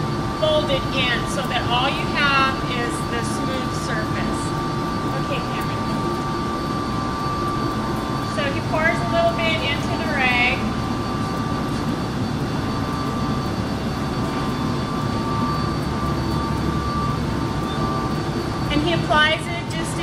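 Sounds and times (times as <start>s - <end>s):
mechanical drone with whining tones: 0.0s - 20.0s.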